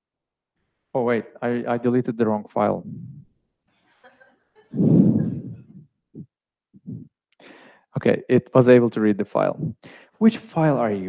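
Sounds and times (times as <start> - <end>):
breathy laugh: 4.0 - 5.8.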